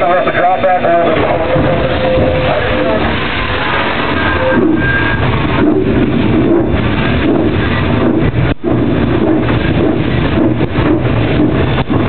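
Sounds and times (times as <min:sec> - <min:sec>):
man talking: 0:00.0 - 0:03.1
steam locomotive rumble and hiss: 0:00.0 - 0:12.0.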